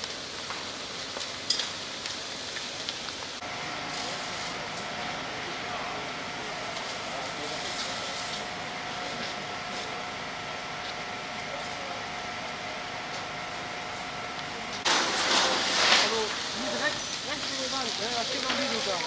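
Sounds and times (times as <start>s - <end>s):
faint crackles: 0.0s - 4.9s, 13.9s - 19.0s
fire hose water jet rushing: 14.8s - 19.0s.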